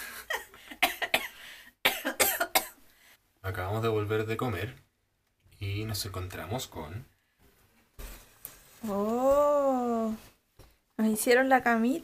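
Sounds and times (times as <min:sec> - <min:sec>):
woman coughing: 0:00.3 - 0:02.8.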